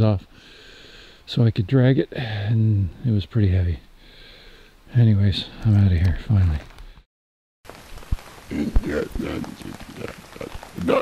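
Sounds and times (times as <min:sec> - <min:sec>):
steady hiss: 0:07.7 - 0:11.0.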